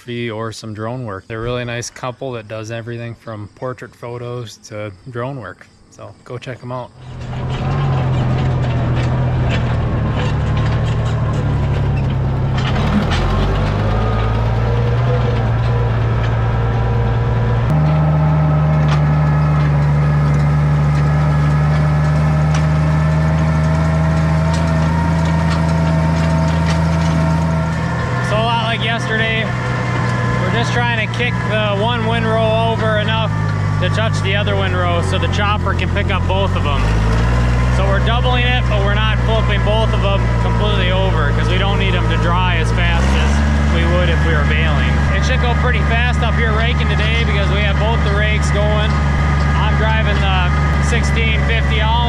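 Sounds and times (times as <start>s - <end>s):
tractor engine running under load: 6.9s - 52.0s.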